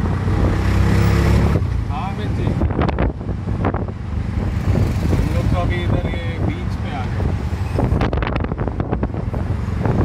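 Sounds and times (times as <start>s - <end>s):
auto rickshaw engine running: 0.0s - 10.0s
wind on microphone: 2.4s - 10.0s.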